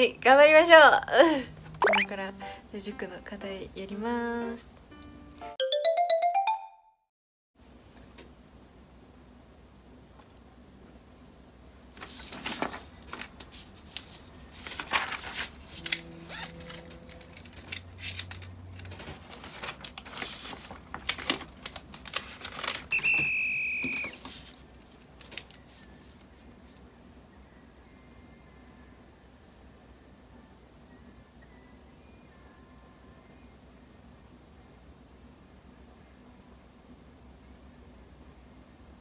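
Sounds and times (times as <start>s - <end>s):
high electronic beep: 1.8s - 2.1s
paper pages rustling: 11.9s - 22.9s, 24.1s - 26.3s.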